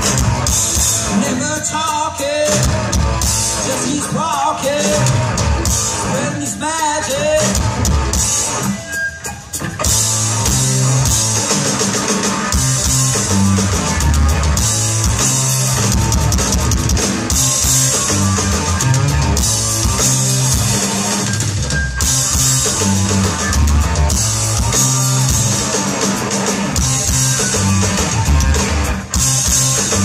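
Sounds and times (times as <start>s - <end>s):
bass guitar: 0.0s - 30.0s
distorted electric guitar: 0.0s - 30.0s
drum kit: 0.0s - 30.0s.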